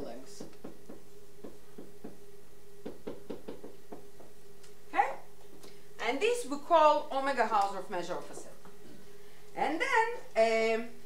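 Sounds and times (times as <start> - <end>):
marker tapping on whiteboard: 0.4 - 2.2, 2.8 - 4.4.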